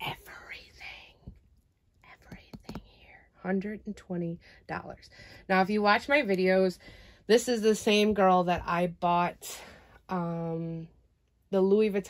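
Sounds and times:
light taps: 2.2 - 3.0.

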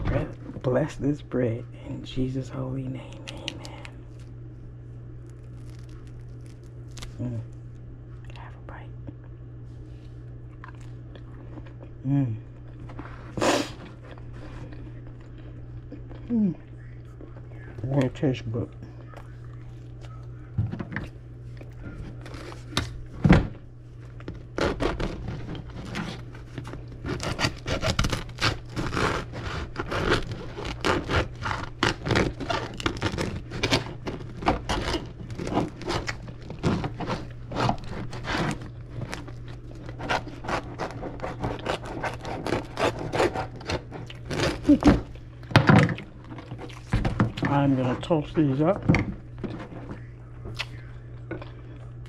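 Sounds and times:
steady low hum: 0.0 - 52.0
person chewing bread: 3.0 - 48.0, 48.6 - 52.0
knife sawing through bread: 24.6 - 26.3, 27.0 - 39.2, 39.9 - 44.9.

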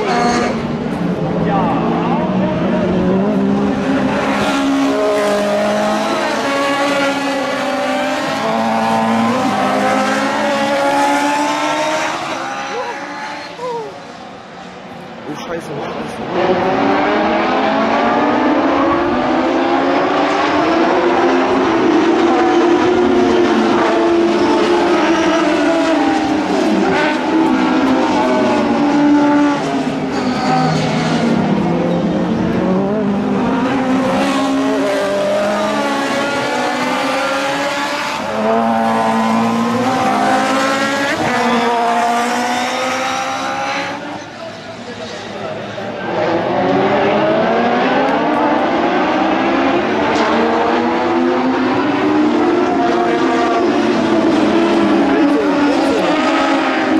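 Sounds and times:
race car engines revving: 0.0 - 56.9.

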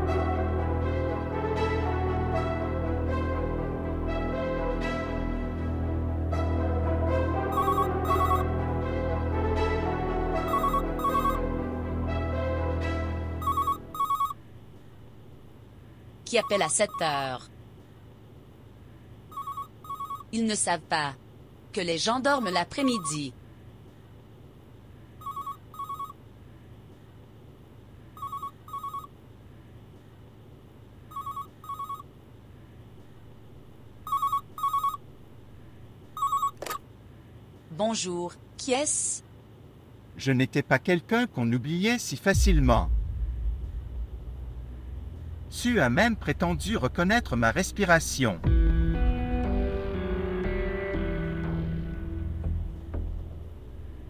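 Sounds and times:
background music score: 0.0 - 14.0, 42.4 - 54.0
telephone ringing: 7.5 - 8.5, 10.4 - 11.4, 13.4 - 14.4, 16.3 - 17.4, 19.3 - 20.3, 22.3 - 23.3, 25.2 - 26.2, 28.2 - 29.2, 31.1 - 32.1, 34.0 - 35.0, 36.2 - 36.8.

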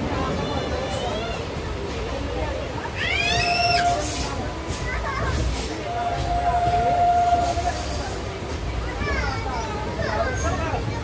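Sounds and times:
train rumble: 0.0 - 11.0.

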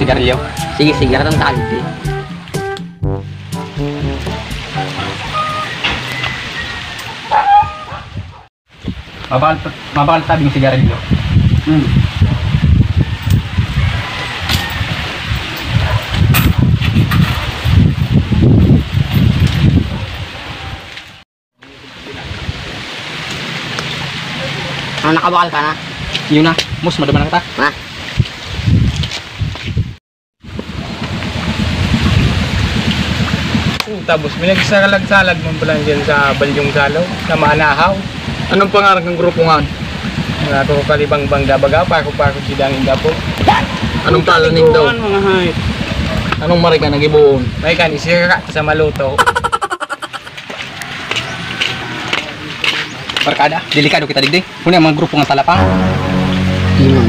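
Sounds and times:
short pitched sounds: 0.4 - 6.1, 55.6 - 57.0
outdoor background noise: 4.1 - 12.4, 13.0 - 46.7, 47.8 - 57.0
wind buffeting microphone: 5.9 - 21.0, 26.0 - 49.6.

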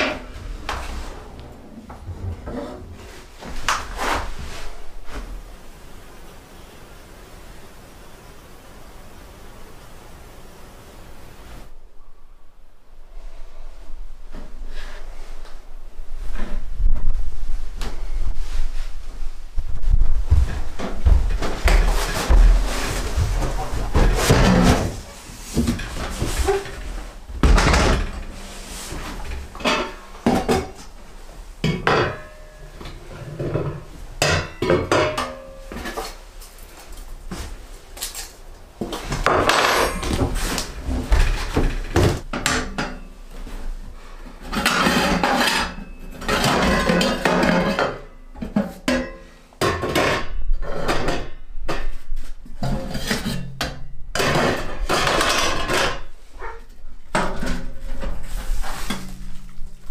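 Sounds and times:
rustling: 0.0 - 6.4, 13.1 - 34.3, 35.5 - 42.3, 54.3 - 59.9
metal clanks and knocks: 20.4 - 30.9.

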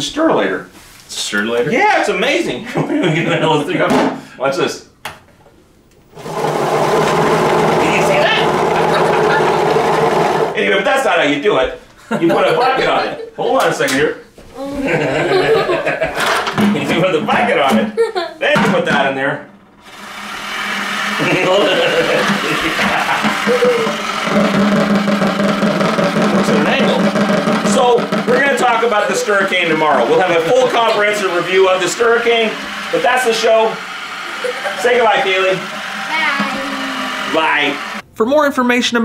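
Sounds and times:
electric mixer motor humming: 6.0 - 10.6, 19.8 - 38.0
low motor hum: 6.0 - 10.6.

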